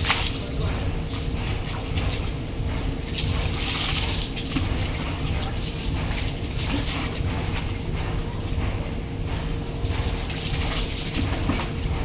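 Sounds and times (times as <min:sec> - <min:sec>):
steady low rumble: 0:00.0 - 0:12.0
water splashing and pouring: 0:00.0 - 0:12.0.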